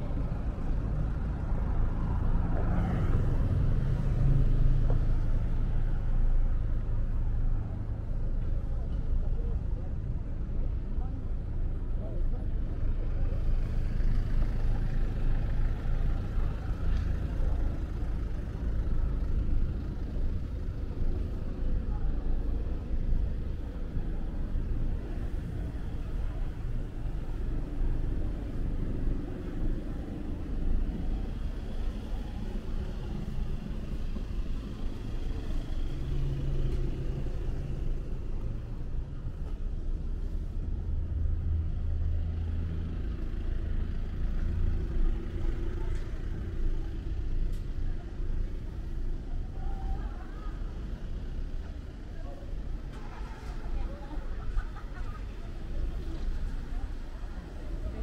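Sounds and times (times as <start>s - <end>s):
low rumble of passing cars: 0.0s - 58.0s
vehicle engine hum: 0.0s - 58.0s.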